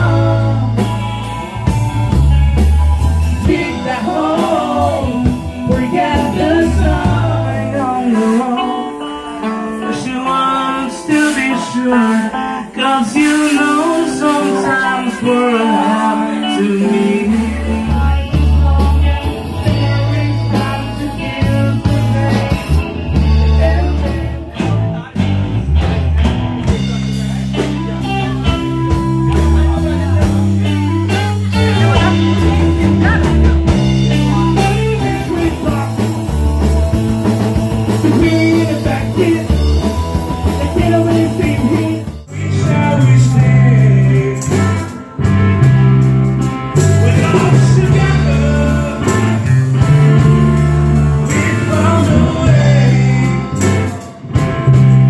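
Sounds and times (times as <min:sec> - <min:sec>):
drum kit: 0:00.0 - 0:08.9, 0:13.1 - 0:55.0
bass guitar: 0:00.0 - 0:55.0
electric guitar: 0:00.0 - 0:55.0
live rock band playing: 0:00.0 - 0:55.0.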